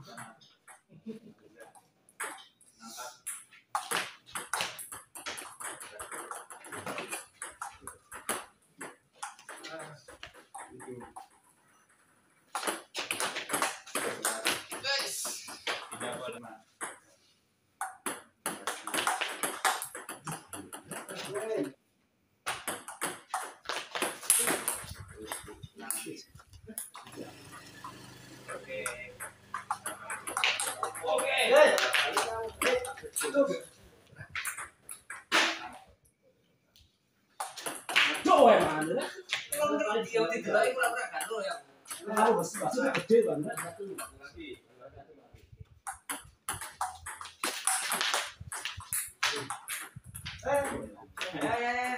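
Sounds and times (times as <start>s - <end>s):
table tennis ball hits: 2.2s - 2.6s, 3.2s - 11.4s, 12.5s - 17.1s, 17.8s - 21.7s, 22.4s - 26.1s, 26.8s - 33.3s, 37.4s - 39.7s, 40.6s - 44.2s, 45.8s - 51.9s.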